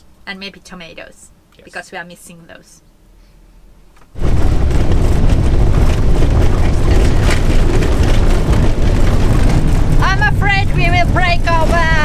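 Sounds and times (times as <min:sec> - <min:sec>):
van engine and tyre road noise: 0:04.2 - 0:12.0.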